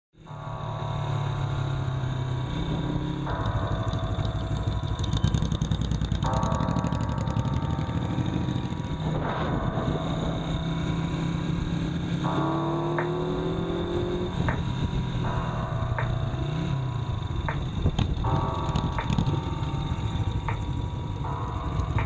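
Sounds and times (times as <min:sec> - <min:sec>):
motorcycle engine running: 0:00.3 - 0:22.0.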